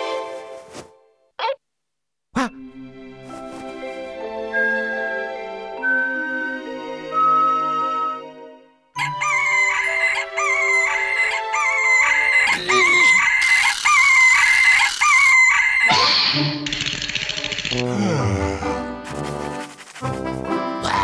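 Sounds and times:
music: 0:00.0 - 0:01.1, 0:02.4 - 0:12.8, 0:17.3 - 0:21.0
cartoon rooster crowing: 0:09.0 - 0:15.9
harsh squawk-like burst: 0:09.1 - 0:16.4.

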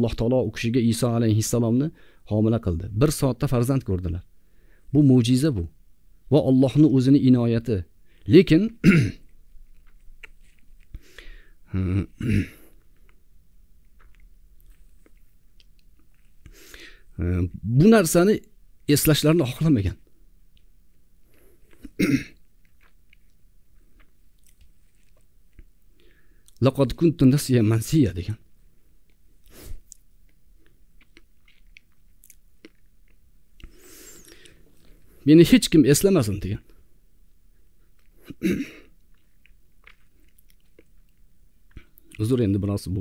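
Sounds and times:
breaths: 0:01.9 - 0:02.3, 0:04.4 - 0:04.9, 0:10.9 - 0:11.7, 0:16.5 - 0:17.2, 0:25.9 - 0:26.6, 0:33.6 - 0:35.3
man clearing throat: 0:08.8 - 0:09.3, 0:11.8 - 0:12.7, 0:21.9 - 0:22.4, 0:38.2 - 0:38.9
wet mouth clicks: 0:09.7 - 0:11.0, 0:33.6 - 0:34.6.

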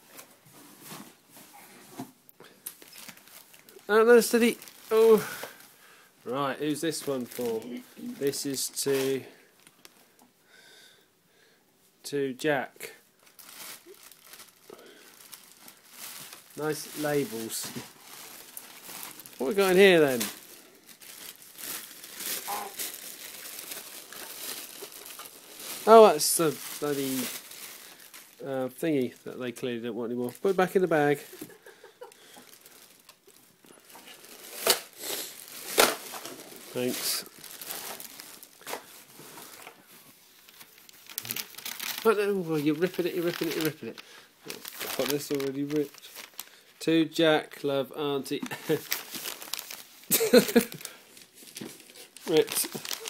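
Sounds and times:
wrapping paper crinkling: 0:02.6 - 0:05.7, 0:06.7 - 0:10.0, 0:13.2 - 0:29.4, 0:30.1 - 0:46.9, 0:48.2 - 0:53.0.

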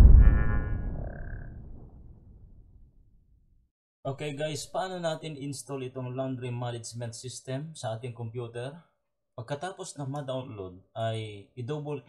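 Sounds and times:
deep rumbling boom: 0:00.0 - 0:02.6.

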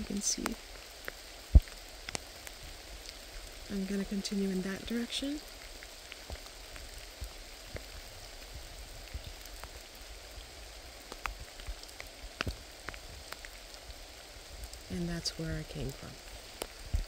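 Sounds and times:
light rain falling: 0:00.0 - 0:17.0
raindrop ticks: 0:00.0 - 0:17.0.

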